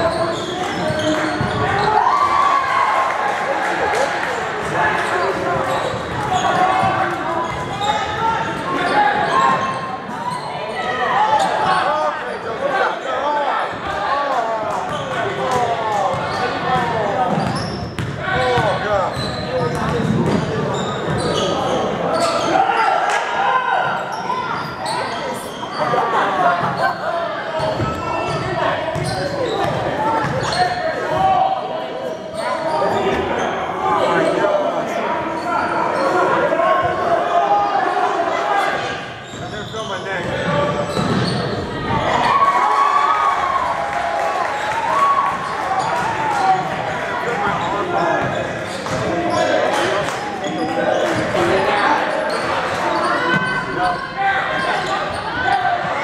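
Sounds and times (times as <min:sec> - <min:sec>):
basketball bouncing on court: 0:16.1 - 0:20.5, 0:27.6 - 0:30.5.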